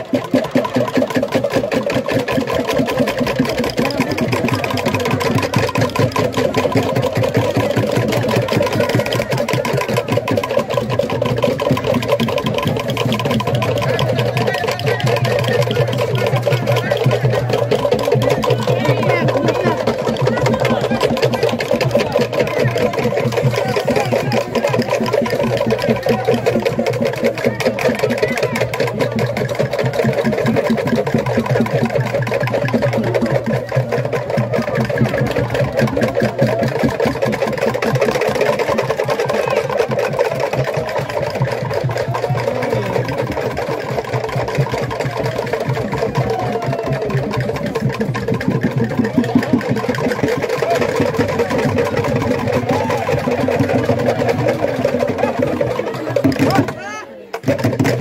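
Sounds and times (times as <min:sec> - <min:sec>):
drone of many voices: 0:00.0 - 0:58.0
fast percussion: 0:00.0 - 0:58.0.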